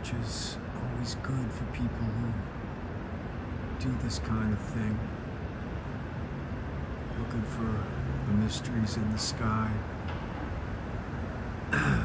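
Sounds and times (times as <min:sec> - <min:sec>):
city background rumble: 0:00.0 - 0:12.0.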